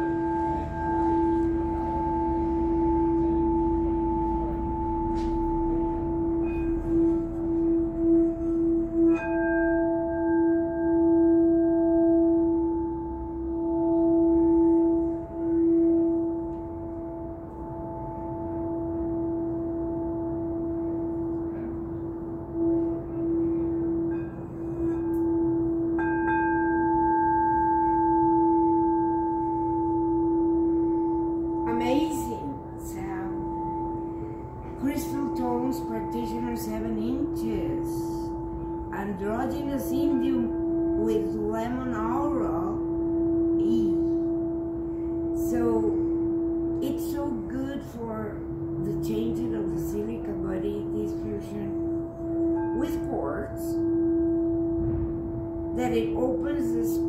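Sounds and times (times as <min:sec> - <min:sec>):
singing bowl rim struck: 0:00.0 - 0:47.4, 0:51.6 - 0:57.0
crystal singing bowl tone: 0:00.0 - 0:57.0.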